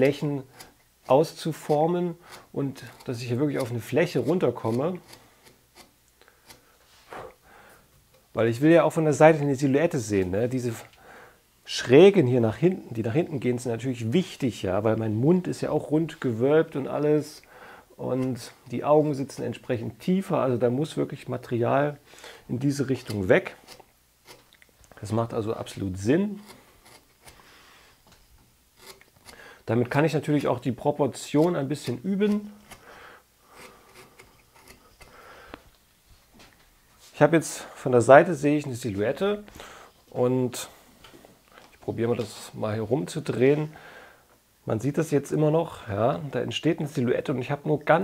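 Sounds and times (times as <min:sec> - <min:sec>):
gouge scraping wood: 0:00.4 - 0:06.7, 0:22.8 - 0:24.5, 0:25.7 - 0:27.5, 0:28.8 - 0:29.4, 0:33.5 - 0:35.2.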